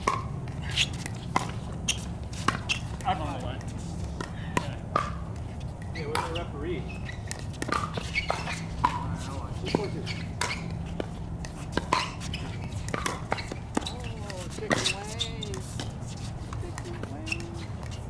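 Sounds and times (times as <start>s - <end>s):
steady low hum: 0.0s - 18.0s
players talking: 2.9s - 5.2s, 5.8s - 7.0s, 8.3s - 10.4s, 13.7s - 17.7s.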